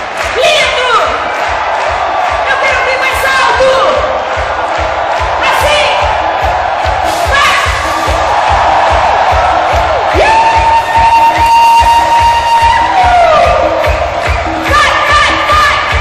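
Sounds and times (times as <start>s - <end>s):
crowd cheering: 0.0s - 16.0s
kick-drum beat: 0.0s - 16.0s
live pop music: 2.1s - 16.0s.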